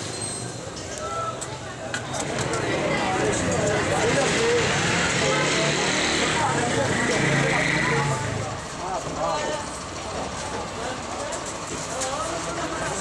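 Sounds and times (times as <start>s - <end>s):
people talking over one another: 0.9s - 13.0s.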